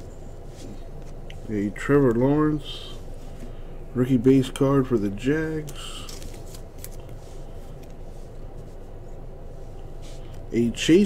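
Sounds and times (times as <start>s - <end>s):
trading cards flipped by hand: 5.6s - 8.0s.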